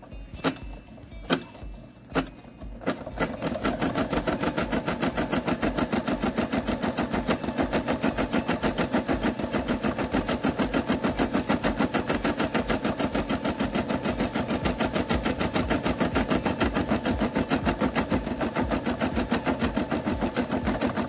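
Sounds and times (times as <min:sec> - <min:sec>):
embroidery machine stitching: 0:00.0 - 0:21.0.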